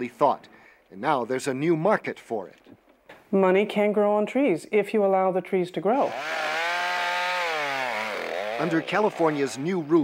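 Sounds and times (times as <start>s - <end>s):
chainsaw cutting tree trunk: 6.0s - 10.0s.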